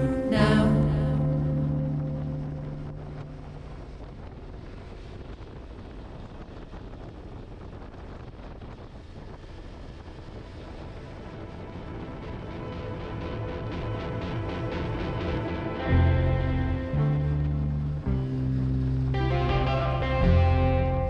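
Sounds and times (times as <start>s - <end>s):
background music: 0.0s - 4.3s, 10.5s - 21.0s
road noise: 0.0s - 21.0s
wind buffeting microphone: 0.0s - 21.0s.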